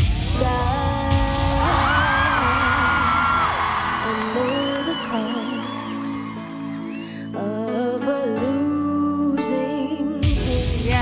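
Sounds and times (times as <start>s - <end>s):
backing music: 0.0s - 11.0s
woman singing slow melody: 0.0s - 11.0s.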